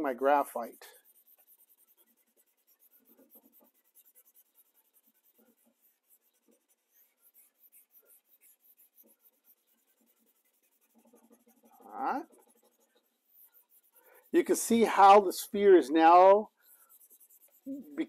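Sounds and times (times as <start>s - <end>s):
blending stump rubbing on paper: 0.0s - 18.0s.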